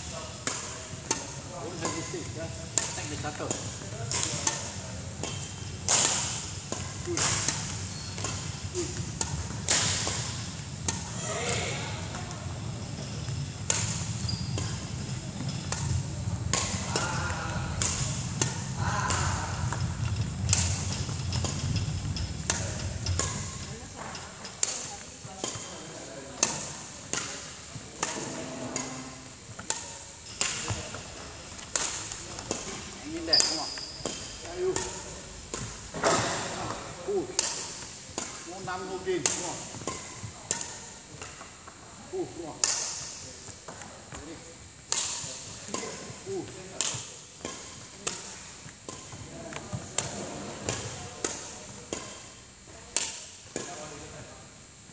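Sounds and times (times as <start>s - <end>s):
rackets striking shuttlecocks: 0.1s - 54.3s.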